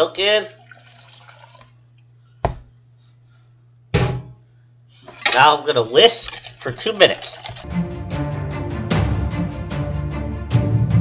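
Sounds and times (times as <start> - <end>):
milk pouring into plastic bowl: 0.5 - 1.7
sharp knock: 4.0 - 4.4.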